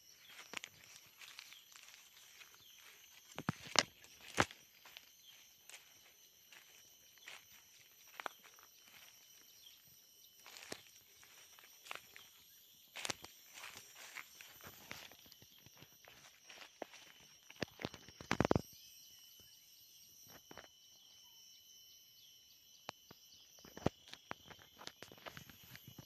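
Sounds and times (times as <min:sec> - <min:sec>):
footsteps crunching dry leaves: 0:00.0 - 0:18.6.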